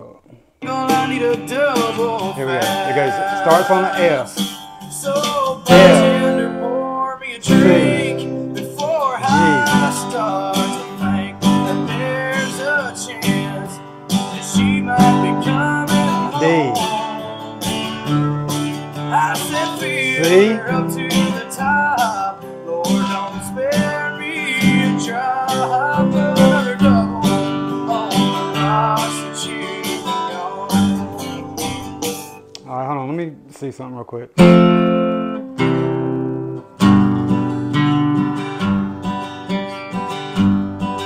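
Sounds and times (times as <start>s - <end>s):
man singing: 0.0s - 32.8s
acoustic guitar strumming: 0.6s - 33.6s, 34.4s - 41.0s.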